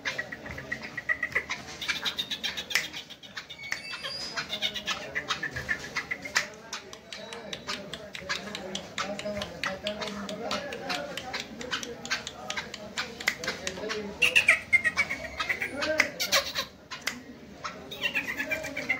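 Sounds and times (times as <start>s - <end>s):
sharp clicks and taps: 0.0s - 4.2s, 4.8s - 14.4s, 17.0s - 17.3s.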